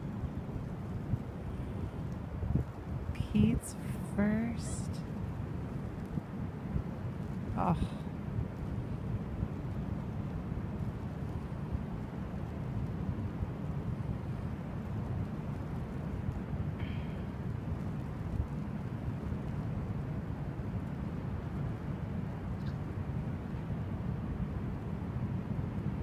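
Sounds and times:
wind rumbling on microphone: 0.0s - 26.0s.

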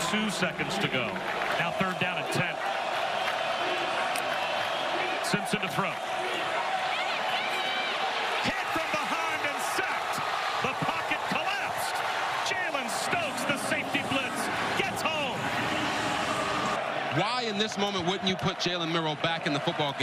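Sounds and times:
crowd cheering and shouting: 0.0s - 20.0s
people clapping: 0.0s - 20.0s.

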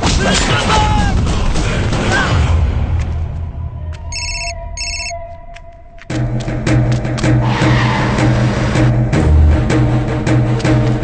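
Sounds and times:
telephone ringing tone: 4.1s - 5.2s.

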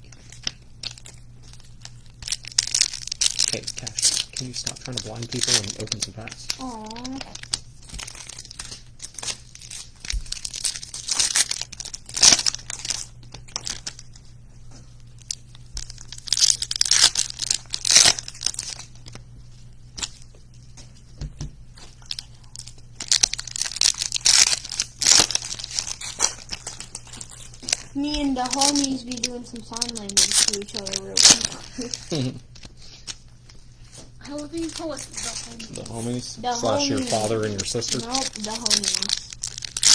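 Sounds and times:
foil wrappers tearing and crinkling: 0.0s - 14.3s, 15.0s - 20.7s, 21.7s - 39.9s.

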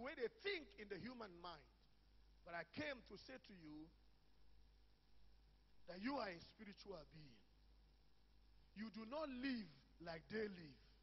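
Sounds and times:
man speaking: 0.0s - 1.8s, 2.4s - 4.0s, 5.8s - 7.5s, 8.7s - 11.0s
faint low hum: 0.0s - 11.0s.

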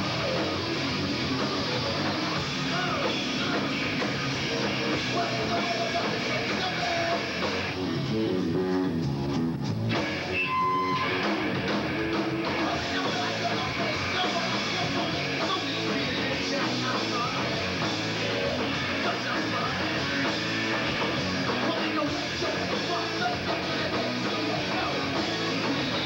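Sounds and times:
electric guitar: 0.0s - 26.0s
live rock band: 0.0s - 26.0s.

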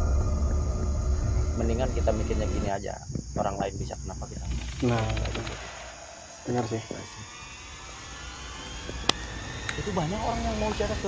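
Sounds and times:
low rumble: 0.0s - 7.2s
faint insect drone: 0.0s - 11.0s.

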